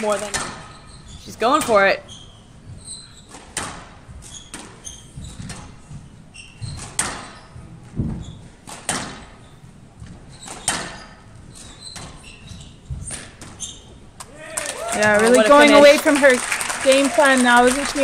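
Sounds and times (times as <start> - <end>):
squash ball hitting rackets and walls: 0.0 - 1.8, 2.6 - 14.0
shoes squeaking on court floor: 0.0 - 14.2.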